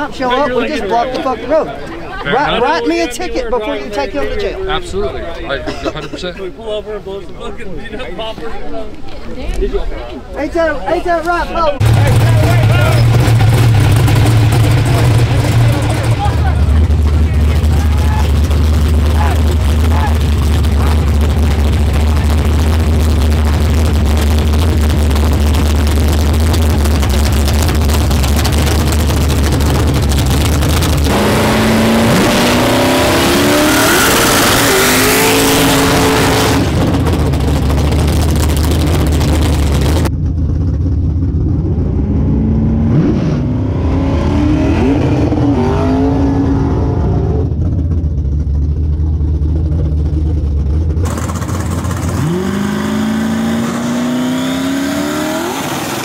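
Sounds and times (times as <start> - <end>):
race car engines revving: 11.7 - 56.0.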